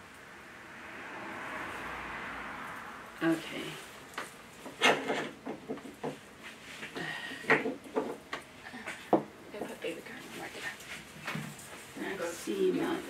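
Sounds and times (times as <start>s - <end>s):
artificial pine wreath rustling: 2.6s - 7.4s, 9.6s - 13.0s.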